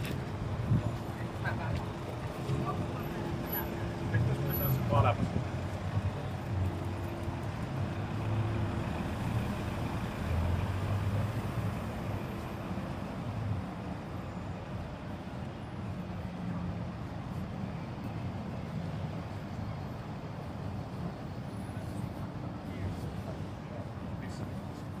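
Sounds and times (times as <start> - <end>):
hum of road traffic: 0.0 - 25.0
voices of passers-by: 0.0 - 25.0.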